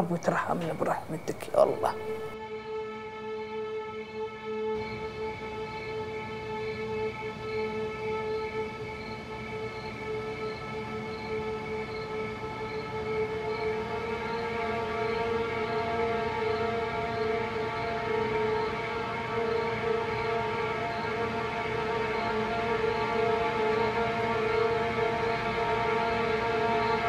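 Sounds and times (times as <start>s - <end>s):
faint high pulsing tone: 0.0s - 2.4s
droning suspenseful chord: 0.0s - 27.0s.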